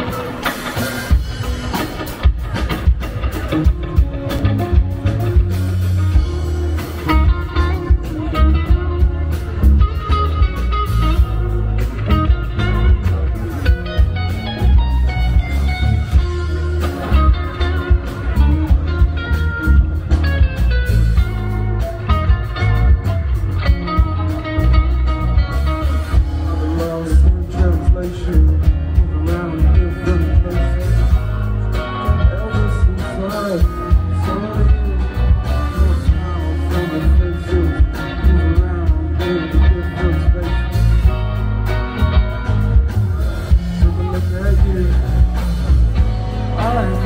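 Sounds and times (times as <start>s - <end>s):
live rock band playing: 0.0s - 47.0s.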